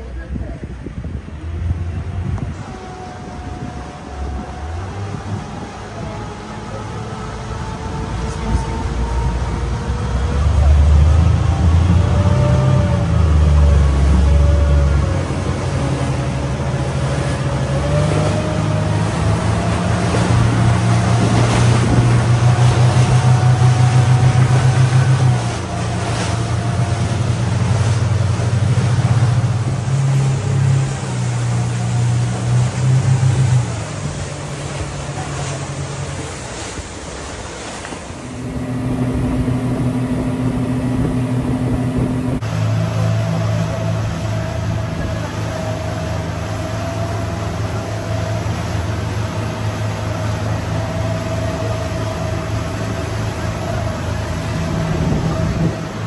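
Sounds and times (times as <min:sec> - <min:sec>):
motorboat engine running: 0:00.0 - 0:56.0
water rushing along hull: 0:00.0 - 0:56.0
wind: 0:00.0 - 0:56.0.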